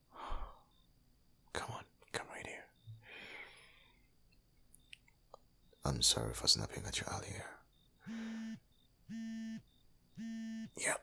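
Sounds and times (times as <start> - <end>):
man breathing sharply: 0.0 - 0.8, 3.0 - 4.1, 8.0 - 8.6.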